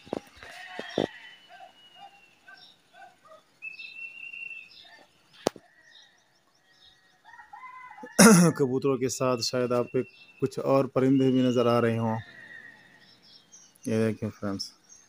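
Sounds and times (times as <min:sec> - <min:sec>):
people calling: 0:08.2 - 0:12.3
people whistling: 0:09.6 - 0:11.6.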